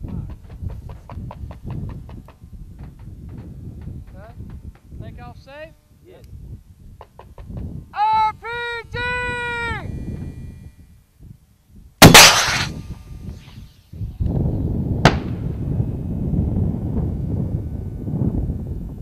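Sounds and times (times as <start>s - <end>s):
sharp crack of distant impact: 12.0s - 13.0s
rocket launcher blast: 12.0s - 13.1s
steady noise: 12.0s - 13.4s.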